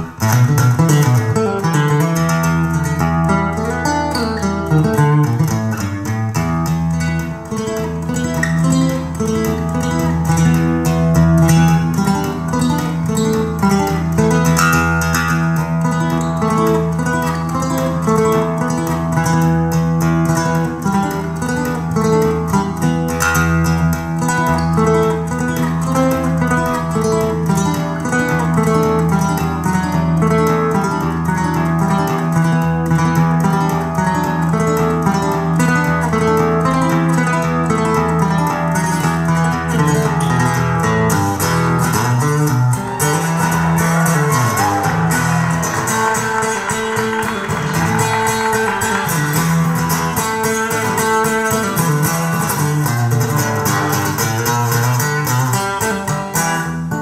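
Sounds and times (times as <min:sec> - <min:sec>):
instrumental guitar music over beat: 0:00.0 - 0:57.0.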